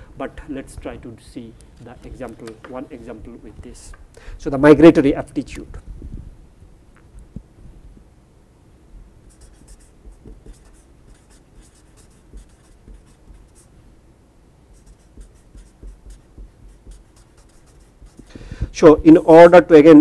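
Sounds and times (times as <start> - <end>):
marker scratching on paper: 9.3 - 13.7, 14.7 - 18.3.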